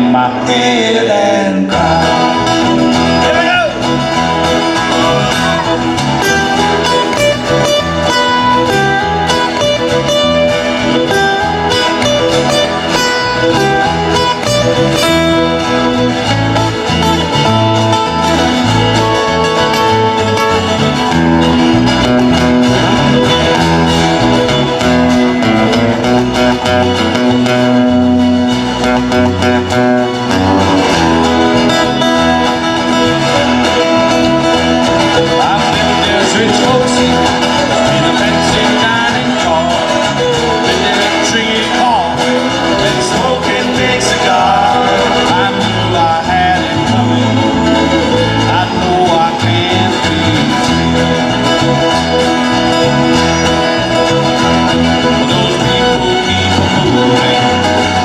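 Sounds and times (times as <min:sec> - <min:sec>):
acoustic guitars picking and strumming: 0:00.0 - 0:58.0
rhythmic bass line: 0:00.0 - 0:58.0.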